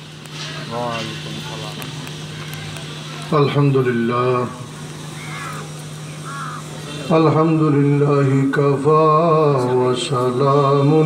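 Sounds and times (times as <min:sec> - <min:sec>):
steady low hum: 0:00.0 - 0:11.0
crow cawing: 0:05.1 - 0:07.1.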